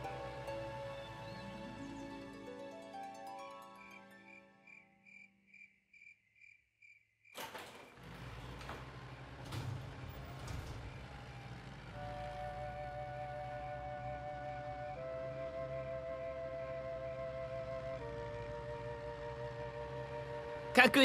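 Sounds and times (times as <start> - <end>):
soft background music: 0.0 - 5.0, 10.8 - 21.0
crickets chirping: 3.8 - 7.4
low rumble with knocks: 8.0 - 14.0
soft flute-like notes: 11.9 - 20.8.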